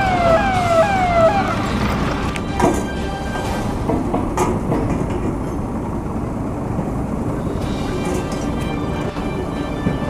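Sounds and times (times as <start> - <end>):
train rumbling on rails: 0.0 - 10.0.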